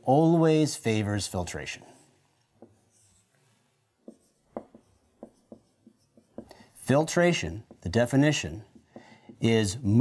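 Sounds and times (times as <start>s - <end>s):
marker writing on whiteboard: 1.6s - 10.0s.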